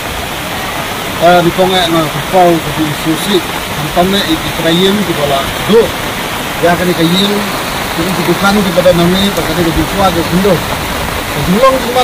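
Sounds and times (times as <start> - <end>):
steady background hiss: 0.4 - 12.0
person talking: 1.2 - 6.0, 6.6 - 10.7, 11.4 - 12.0.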